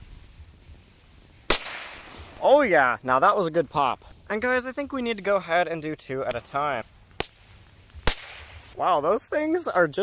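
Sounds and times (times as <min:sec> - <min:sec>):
firecracker pop: 0:08.0 - 0:08.6.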